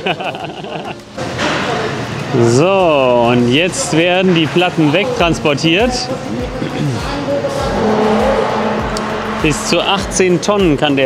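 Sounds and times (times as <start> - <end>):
man laughing: 0.0 - 1.0
loud rushing noise: 7.0 - 11.0.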